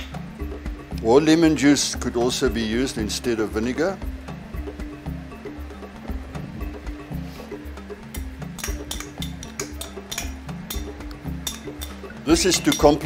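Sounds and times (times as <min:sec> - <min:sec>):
background music with bass line: 0:00.0 - 0:13.0.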